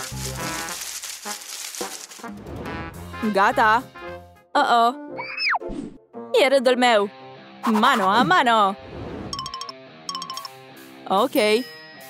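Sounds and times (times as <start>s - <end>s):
plastic leaves crinkling and tearing: 0.0s - 2.6s.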